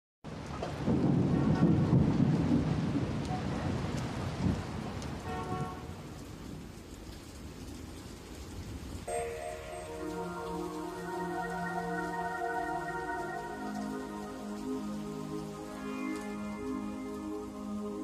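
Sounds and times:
rain: 0:00.2 - 0:18.0
thunder rolling: 0:00.7 - 0:06.6
faint chiming notes: 0:09.1 - 0:18.0
soft synth chord: 0:09.1 - 0:18.0.

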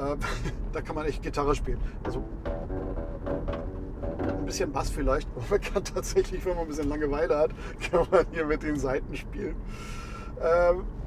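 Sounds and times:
road rumble from moving car: 0:00.0 - 0:11.0
elastic cords twanging: 0:02.0 - 0:04.9.

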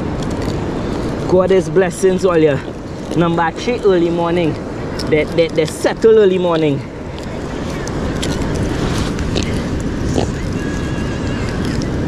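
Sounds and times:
surf at the shoreline: 0:00.0 - 0:12.0
wind: 0:00.0 - 0:12.0.

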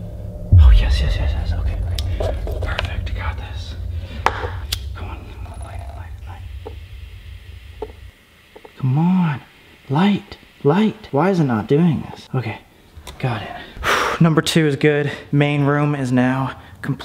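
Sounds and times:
steady low rumble: 0:00.0 - 0:09.0
breathy whispered sounds: 0:00.5 - 0:08.8.

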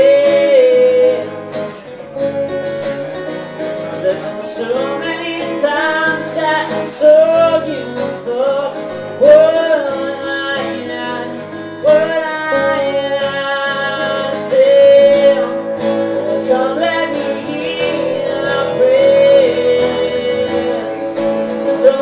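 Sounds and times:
man singing: 0:00.0 - 0:02.0, 0:03.0 - 0:22.0
acoustic guitars strumming: 0:00.0 - 0:22.0.

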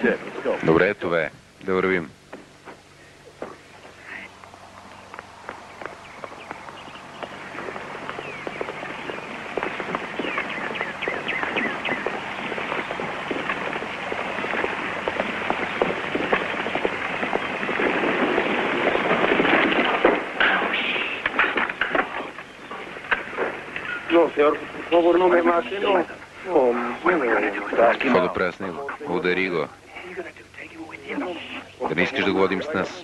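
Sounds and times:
voices: 0:00.0 - 0:33.0
sharp cracks and pops: 0:04.4 - 0:24.2.

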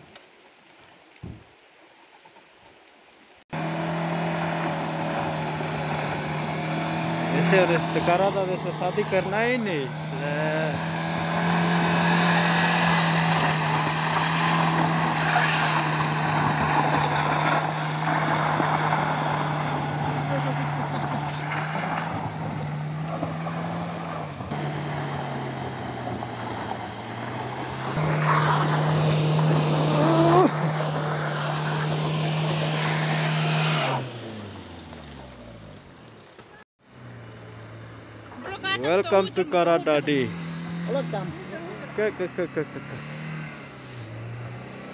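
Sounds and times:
car engine revving high: 0:03.5 - 0:35.6, 0:37.0 - 0:44.9
tyres churning through mud: 0:03.5 - 0:44.9.

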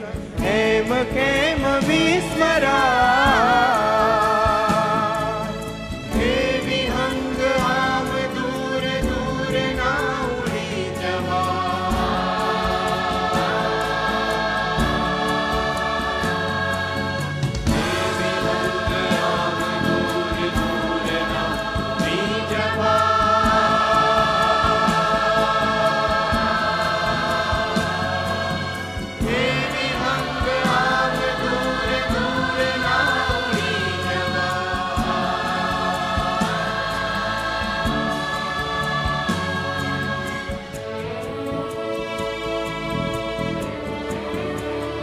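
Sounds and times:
mixed choir singing: 0:00.0 - 0:45.0
live band with drum kit: 0:14.4 - 0:41.0.

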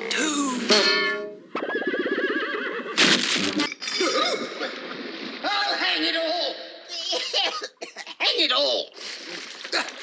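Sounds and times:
horse whinnying: 0:01.6 - 0:03.0.

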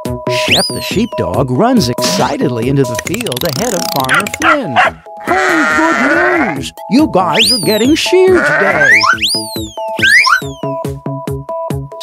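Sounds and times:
bouncy background music: 0:00.0 - 0:12.0
cartoon swoop: 0:07.4 - 0:07.9, 0:08.8 - 0:10.7.

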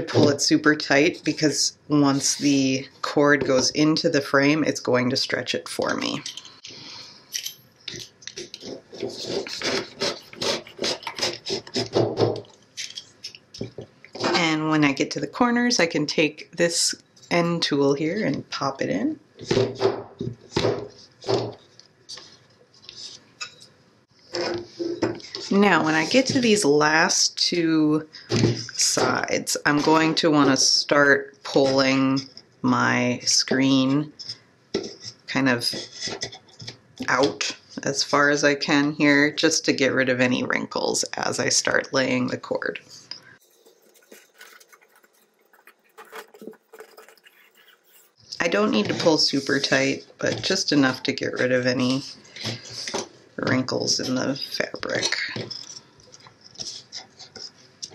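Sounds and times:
mesh rustling and scratching: 0:43.4 - 0:48.2.

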